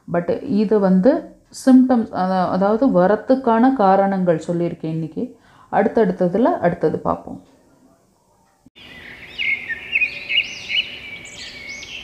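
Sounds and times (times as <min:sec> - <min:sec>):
birds chirping: 0:07.6 - 0:12.0.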